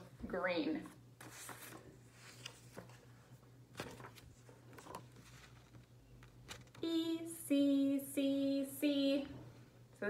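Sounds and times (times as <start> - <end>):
paper cards rustling and tapping: 1.2 - 6.8.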